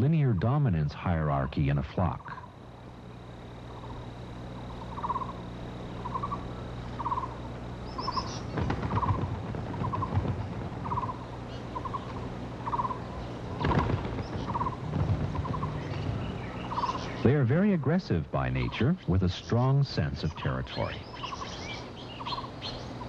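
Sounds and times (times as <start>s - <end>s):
higher bird chirps: 1.2s - 10.2s, 10.8s - 19.1s, 20.2s - 23.0s
bird rasping call: 3.6s - 17.9s, 20.3s - 23.0s
rustling knocks: 8.5s - 11.4s, 13.6s - 17.0s.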